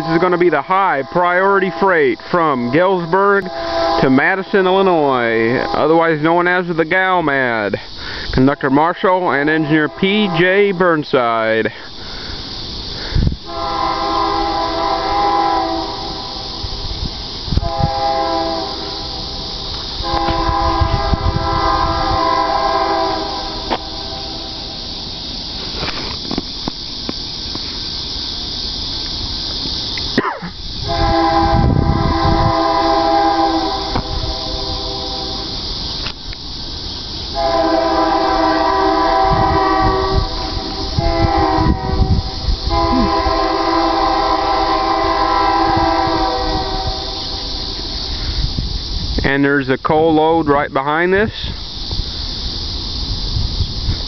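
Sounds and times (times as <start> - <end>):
locomotive air horn blasts: 0.0 - 6.2, 9.4 - 10.9, 13.0 - 24.8, 30.2 - 35.8, 37.3 - 48.4
train rumble: 0.0 - 54.0.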